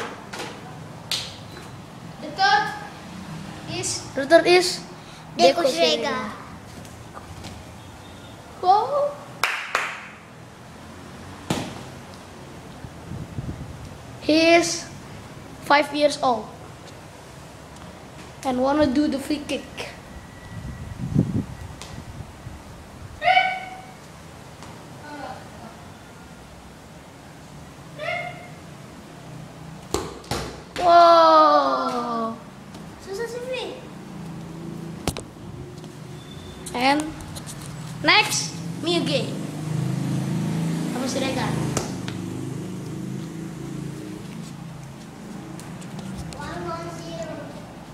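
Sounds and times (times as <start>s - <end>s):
child yelling: 8.6s - 9.3s, 23.2s - 24.0s, 28.0s - 28.6s, 30.8s - 32.5s
sharp knocks: 29.9s - 30.9s.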